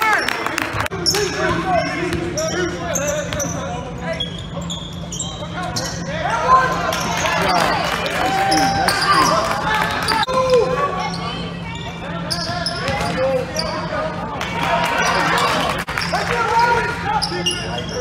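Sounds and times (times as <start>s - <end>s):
shoe squeaks: 1.0s - 6.1s, 10.0s - 14.0s, 17.1s - 18.0s.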